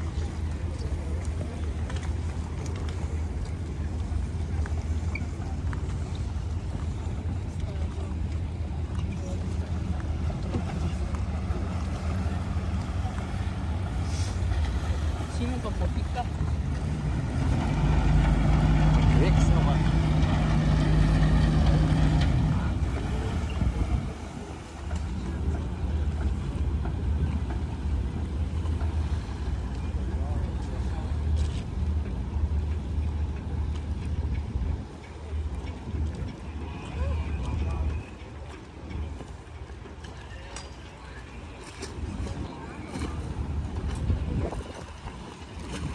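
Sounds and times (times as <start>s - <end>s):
boat engines humming: 0.0s - 45.9s
wind on microphone: 2.4s - 29.7s, 41.0s - 45.9s.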